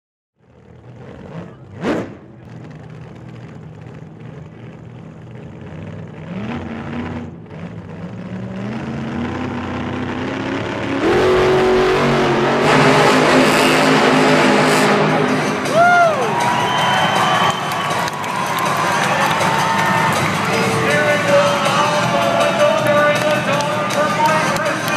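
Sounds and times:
monster truck engines revving: 0:00.4 - 0:24.9.

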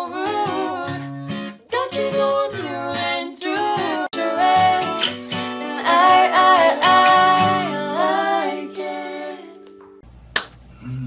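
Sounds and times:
person singing: 0:00.0 - 0:01.1, 0:01.7 - 0:09.8
acoustic guitar chord: 0:04.2 - 0:10.0
finger snap: 0:09.6 - 0:10.6.

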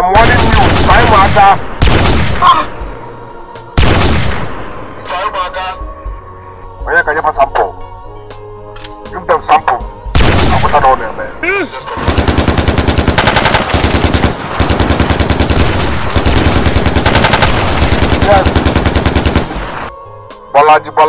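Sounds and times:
automatic rifle fire: 0:12.0 - 0:19.9.

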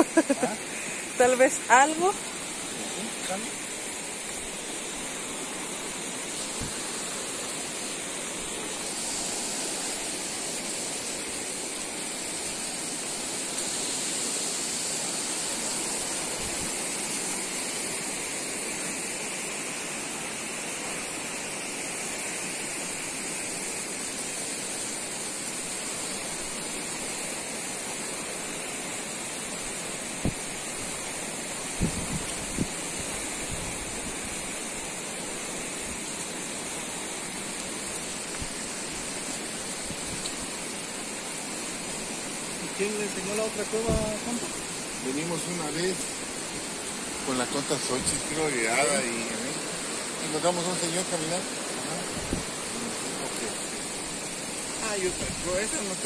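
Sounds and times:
water flowing over rocks: 0:00.0 - 0:56.0.

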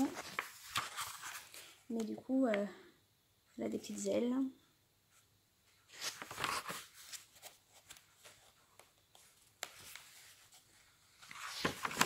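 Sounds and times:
paper rustling: 0:00.0 - 0:02.1, 0:05.9 - 0:12.0.

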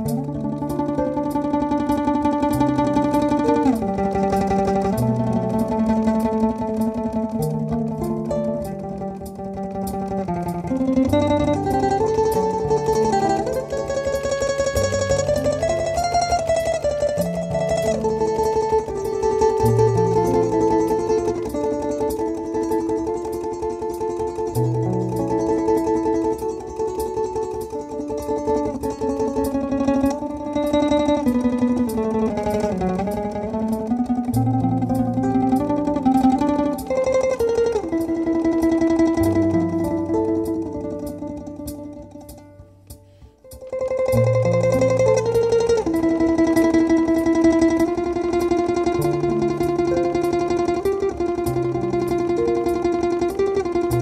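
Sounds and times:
domra tremolo picking: 0:00.0 - 0:54.0.

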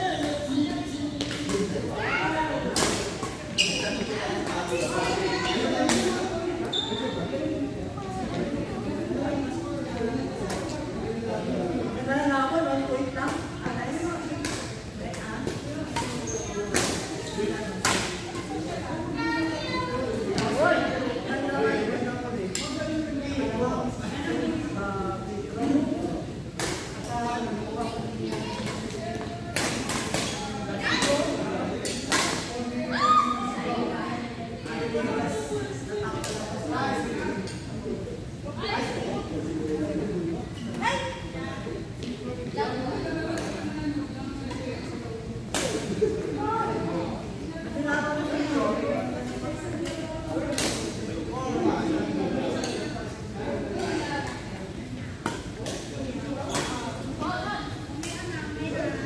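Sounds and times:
people talking: 0:00.0 - 0:59.0
shoe squeaking on floor: 0:03.5 - 0:04.1, 0:06.6 - 0:07.3, 0:16.2 - 0:17.6.

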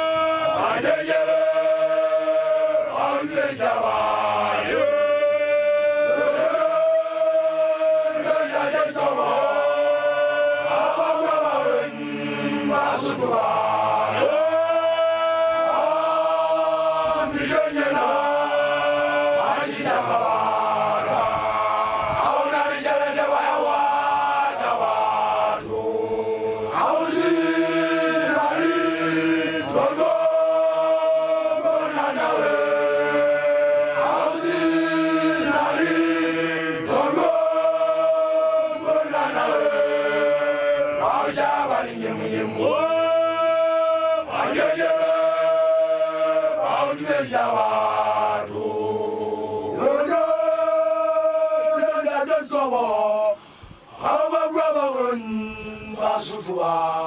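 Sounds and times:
young men chanting together: 0:00.0 - 0:57.0.

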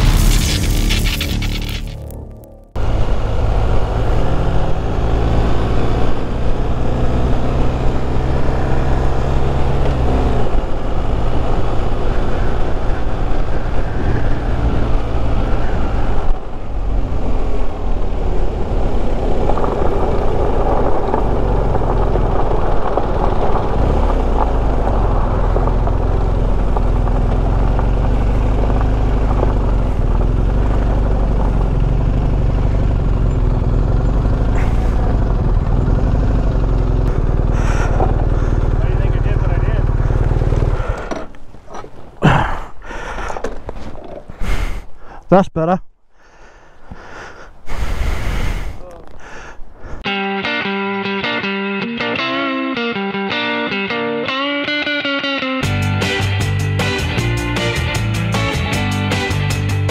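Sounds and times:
tyres crunching on gravel: 0:00.0 - 0:02.5, 0:19.1 - 0:35.7, 0:37.0 - 0:44.4
motorcycle engine running: 0:00.0 - 0:41.3
wind noise on microphone: 0:12.2 - 0:16.5, 0:47.7 - 0:50.0.

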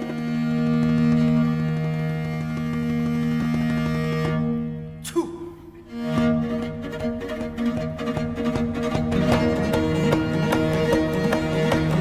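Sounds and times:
bowed string drone: 0:00.0 - 0:12.0.

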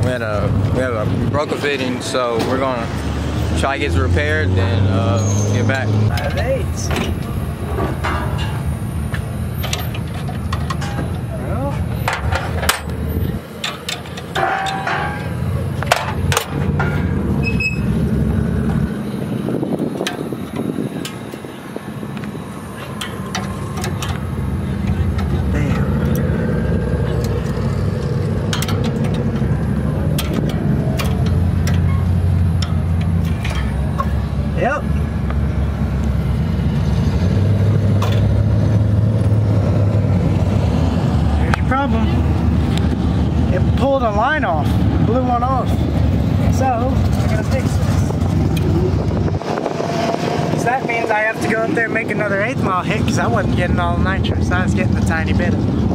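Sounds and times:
indistinct voices: 0:00.0 - 0:36.8
low rumble of engines: 0:00.0 - 0:55.9.

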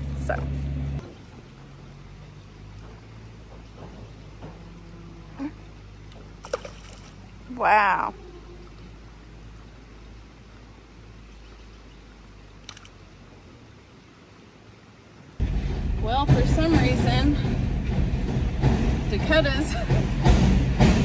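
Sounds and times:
woman talking: 0:00.0 - 0:00.6, 0:07.5 - 0:08.2, 0:16.0 - 0:17.6, 0:19.1 - 0:20.0
outdoor background at a creek: 0:00.0 - 0:21.0
truck engine rumble: 0:00.0 - 0:21.0.

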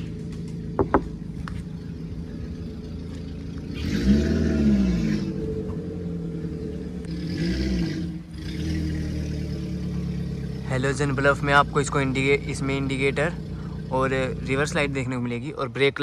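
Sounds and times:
vehicle engine running and revving: 0:00.0 - 0:16.0.

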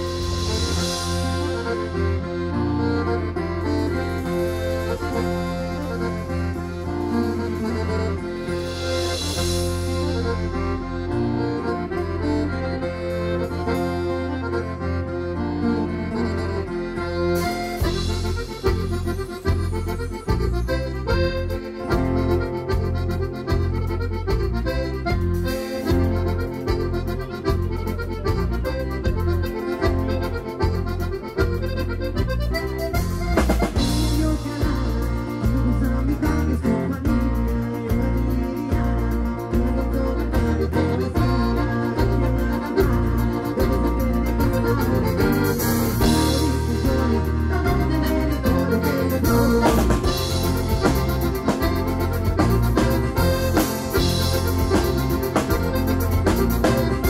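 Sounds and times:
steady drum beat: 0:00.0 - 0:02.8, 0:04.3 - 0:11.4, 0:17.4 - 0:57.0
accordion-like melody: 0:00.0 - 0:57.0
bass guitar: 0:00.0 - 0:57.0
keyboard: 0:00.0 - 0:57.0.

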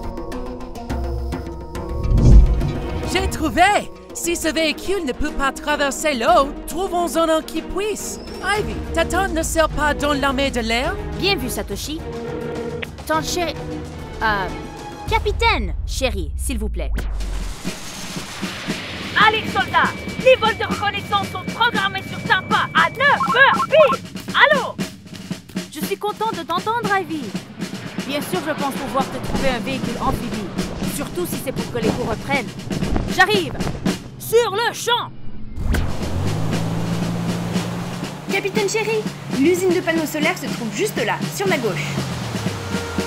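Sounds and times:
background music: 0:00.0 - 0:16.4, 0:17.1 - 0:34.5, 0:35.8 - 0:43.0
whoosh transition effect: 0:02.0 - 0:03.2
rush of water noise: 0:17.4 - 0:21.4, 0:35.6 - 0:43.0
truck engine droning: 0:35.1 - 0:43.0.

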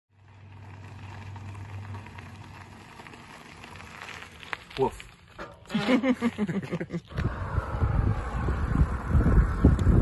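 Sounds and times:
bicycle tyres on gravel: 0:00.1 - 0:10.0
low hum: 0:06.9 - 0:10.0.

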